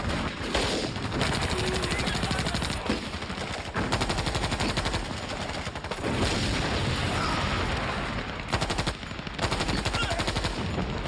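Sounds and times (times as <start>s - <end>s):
machine gun automatic fire: 0.0s - 6.8s, 7.7s - 11.0s.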